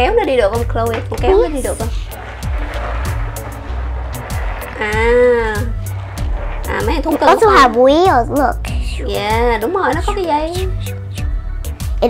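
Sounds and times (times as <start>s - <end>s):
toy wheels rolling on wooden floor: 0.0s - 10.7s
background music: 0.0s - 12.0s.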